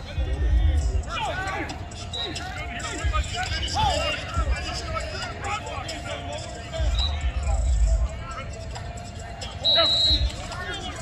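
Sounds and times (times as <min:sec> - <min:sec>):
people talking: 0:00.0 - 0:11.0.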